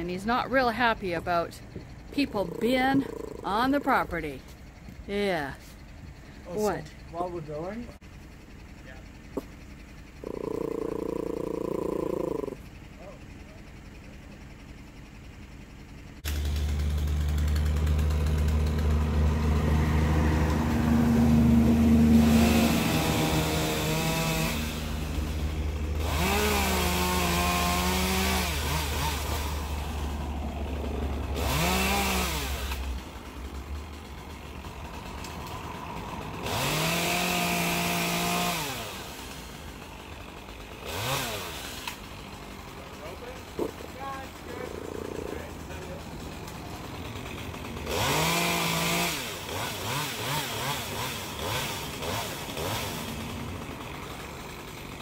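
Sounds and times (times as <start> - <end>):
chainsaw revving: 0.0 - 7.6, 8.7 - 14.8, 15.6 - 55.0
low engine drone: 0.0 - 36.9.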